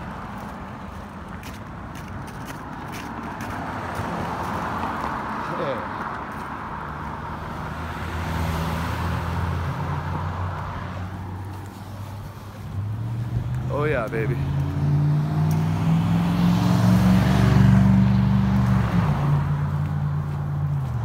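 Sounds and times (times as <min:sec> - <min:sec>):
cars passing: 0:00.0 - 0:21.0
low engine hum: 0:02.8 - 0:21.0.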